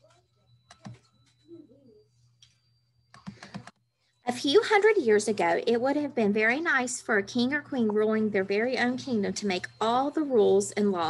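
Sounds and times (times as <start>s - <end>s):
computer clicks: 0.7s - 1.4s, 2.4s - 3.8s.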